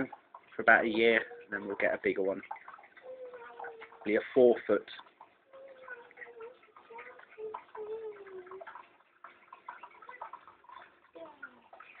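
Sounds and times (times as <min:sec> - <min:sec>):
water trickling: 0:00.0 - 0:12.0.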